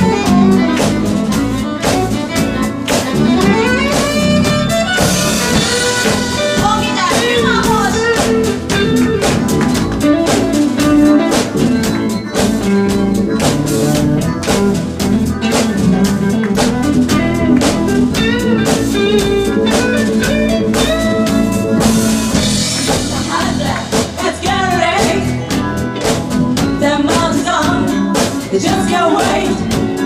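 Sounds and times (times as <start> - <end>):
drum kit steady beat: 0.0 - 30.0
electric guitars: 0.0 - 30.0.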